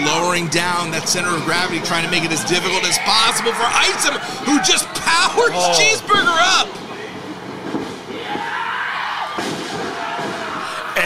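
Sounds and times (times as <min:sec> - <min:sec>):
crowd noise: 0:00.0 - 0:11.0
wrestlers crashing onto canvas: 0:09.2 - 0:10.7.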